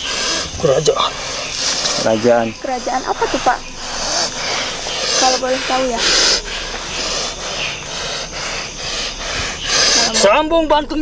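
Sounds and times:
man breathing heavily: 0.0 - 10.3.

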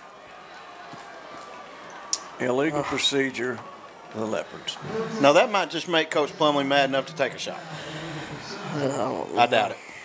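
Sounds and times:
faint stadium crowd noise: 0.0 - 10.0.

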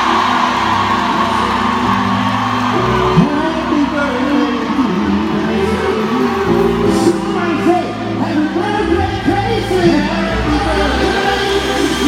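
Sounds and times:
audience whooping and shouting: 0.0 - 12.0
live band playing sustained chords: 0.0 - 12.0.

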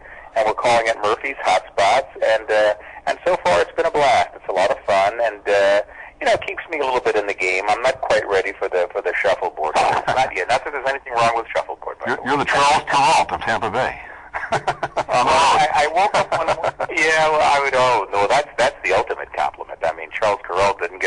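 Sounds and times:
person speaking in interview: 0.4 - 14.0, 15.1 - 21.0.

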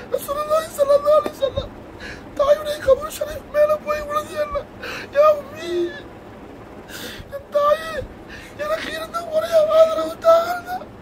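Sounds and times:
man sobbing: 0.0 - 6.1, 6.8 - 11.0
man weeping while reciting: 0.0 - 6.1, 6.9 - 11.0.

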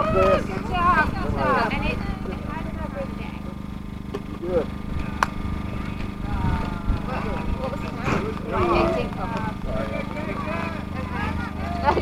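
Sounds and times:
people talking: 0.0 - 3.6, 4.2 - 12.0
low hum: 0.0 - 12.0
wind rumble on microphone: 4.9 - 8.4.

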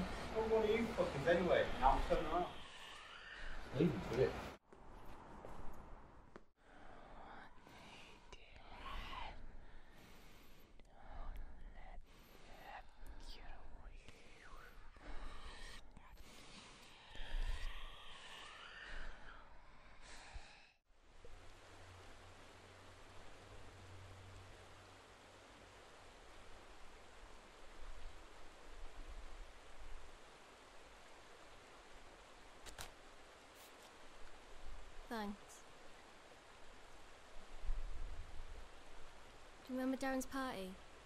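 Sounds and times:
breathy hissing whisper: 0.0 - 4.6, 6.6 - 20.8
night ambience hiss: 0.0 - 41.0.

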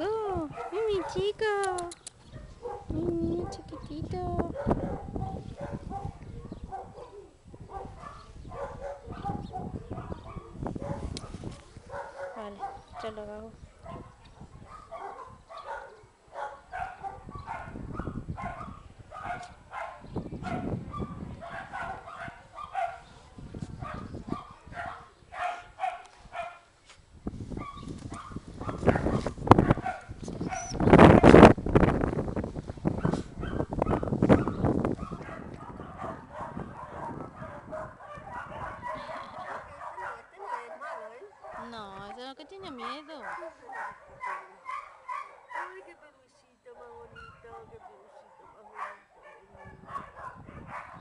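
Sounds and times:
dogs barking: 0.5 - 1.3, 2.3 - 26.7, 27.6 - 30.8, 33.0 - 46.0, 46.7 - 51.0.

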